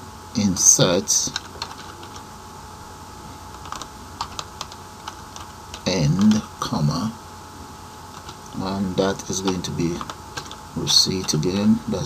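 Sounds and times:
person speaking: 0.4s - 2.2s, 5.4s - 7.2s, 8.2s - 12.0s.

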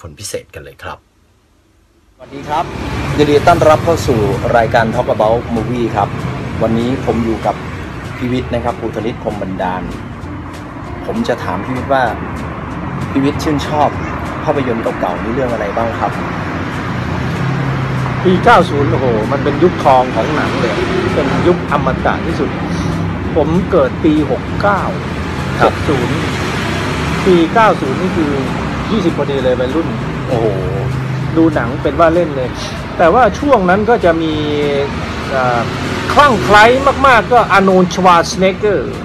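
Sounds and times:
road traffic noise: 0.8s - 39.0s
vehicle engine humming: 1.8s - 39.0s.

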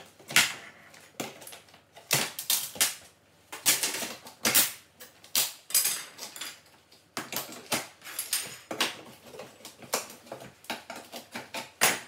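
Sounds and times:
wood trim cracking and snapping: 0.0s - 6.3s.

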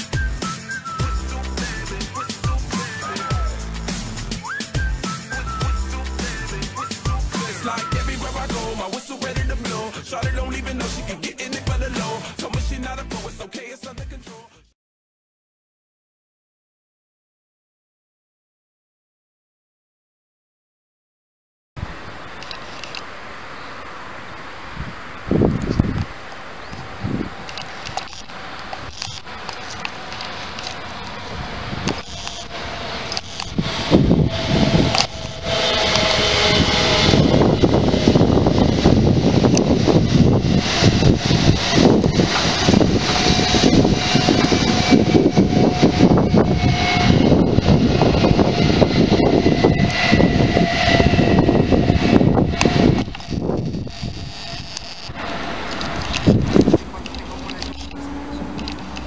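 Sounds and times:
train passing at speed: 0.1s - 10.1s, 23.3s - 59.0s.

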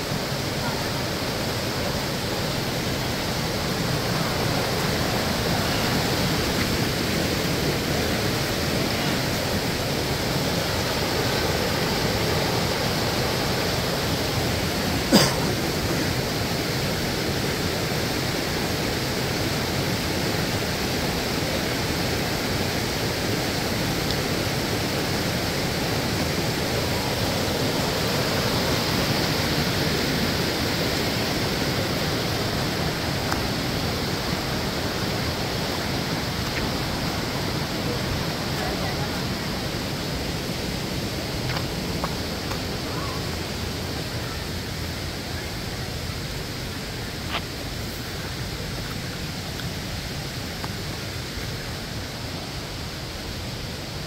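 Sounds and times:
waterfall rushing: 0.0s - 54.0s.

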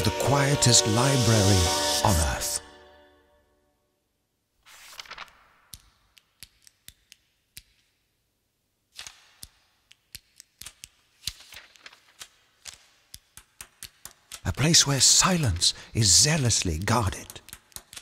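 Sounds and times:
papery rustles: 4.6s - 5.6s, 10.6s - 14.5s.

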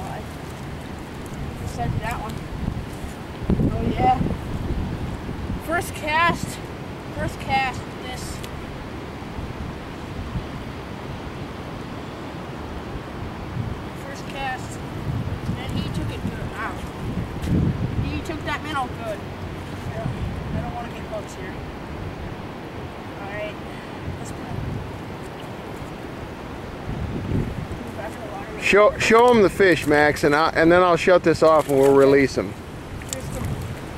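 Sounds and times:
river water hissing: 0.0s - 33.9s
wind buffeting microphone: 0.0s - 33.9s.

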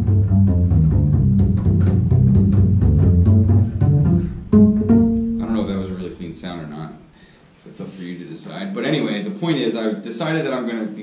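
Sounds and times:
double bass plucked notes: 0.0s - 7.3s.

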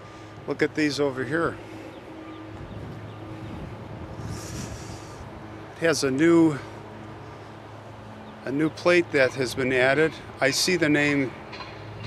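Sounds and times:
wind buffeting microphone: 1.6s - 5.6s.

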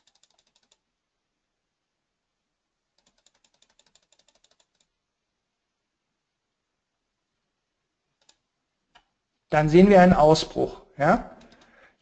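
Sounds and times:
rapid computer clicking: 0.0s - 0.9s, 2.9s - 5.0s, 8.2s - 8.4s, 11.4s - 12.0s.

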